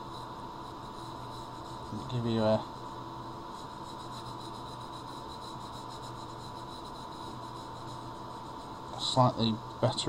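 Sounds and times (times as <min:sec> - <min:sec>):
pencil scratching on paper: 0:00.0 - 0:09.4.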